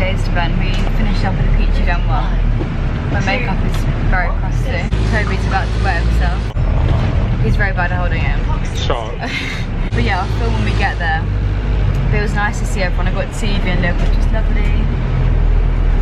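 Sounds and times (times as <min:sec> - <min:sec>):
people talking: 0:00.0 - 0:02.5, 0:03.1 - 0:11.3, 0:12.0 - 0:14.9
bus engine and road rumble: 0:00.0 - 0:16.0.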